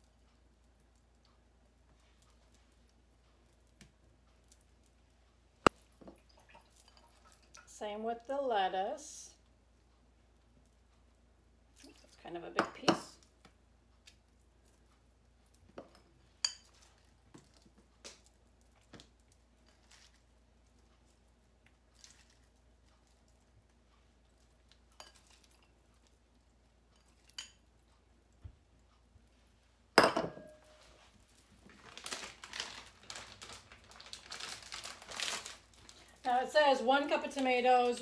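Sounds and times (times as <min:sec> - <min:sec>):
rustling: 0:18.6 - 0:26.2, 0:30.7 - 0:36.3
bowl clunking on stone countertop: 0:30.0 - 0:30.7
bowl tapping and clicking: 0:30.0 - 0:30.7.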